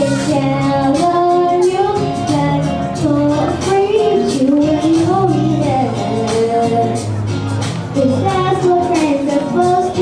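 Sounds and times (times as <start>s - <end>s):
girl singing into microphone: 0.0s - 7.1s, 7.9s - 10.0s
instrumental accompaniment: 0.0s - 10.0s.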